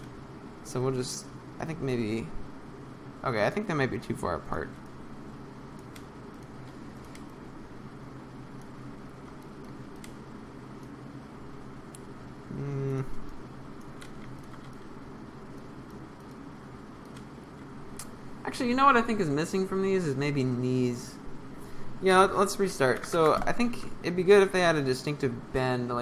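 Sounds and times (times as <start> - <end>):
low room hum: 0.0 - 26.0
computer mouse clicks: 5.7 - 7.4, 8.5 - 11.0, 13.8 - 14.9, 17.0 - 18.2
man humming hmm: 12.5 - 13.2.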